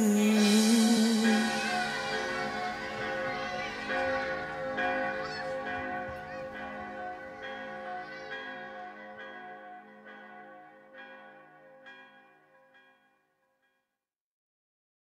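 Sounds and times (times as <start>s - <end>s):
church bells ringing: 0.0s - 13.1s.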